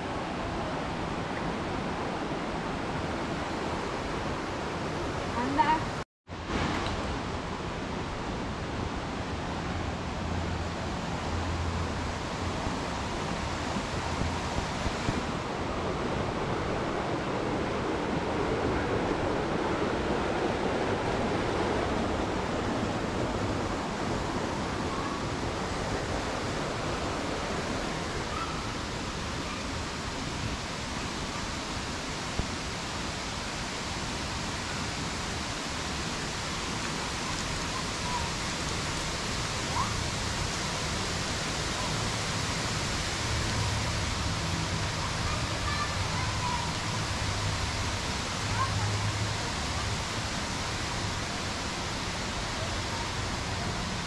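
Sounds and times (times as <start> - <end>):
stream rushing: 0.0 - 54.0.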